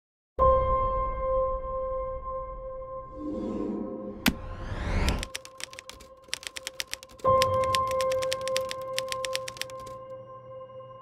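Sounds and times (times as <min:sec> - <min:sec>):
typewriter key clacks: 0:05.1 - 0:10.0.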